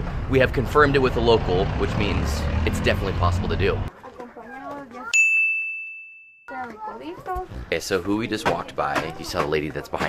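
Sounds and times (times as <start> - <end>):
distant voices: 0.0 - 5.1
market bustle: 0.0 - 5.1, 6.5 - 10.0
high ding: 5.1 - 6.6.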